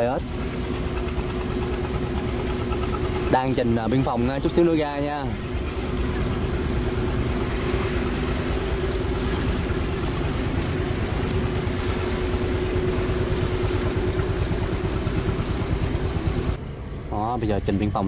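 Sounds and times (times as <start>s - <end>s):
boat diesel engine idling: 0.0s - 16.6s.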